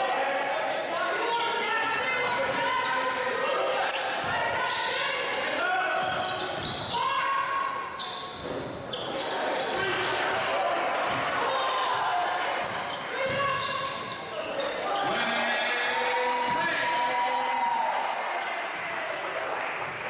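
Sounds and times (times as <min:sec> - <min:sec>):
ball bouncing on hardwood court: 0:06.0 - 0:06.9, 0:11.0 - 0:11.4, 0:12.6 - 0:14.4.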